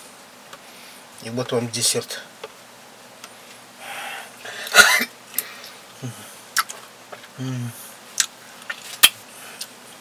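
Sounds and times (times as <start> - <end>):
person breathing in: 3.8 - 4.8
throat-clearing cough: 4.7 - 5.1.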